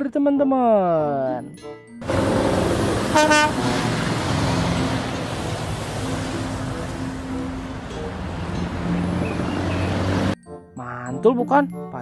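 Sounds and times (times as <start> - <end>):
truck horn blast: 2.0 - 5.3
road noise: 2.0 - 10.4
truck engine running: 2.0 - 10.4.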